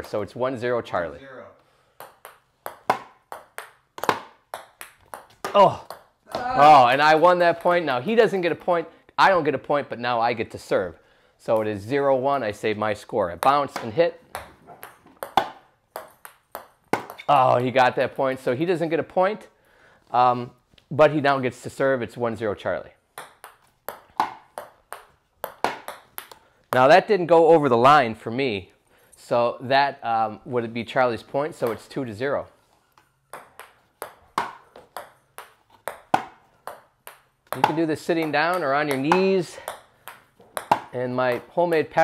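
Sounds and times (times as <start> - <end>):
ping-pong ball clicks: 2.0 - 6.4, 13.4 - 17.4, 23.2 - 26.8, 33.0 - 41.5.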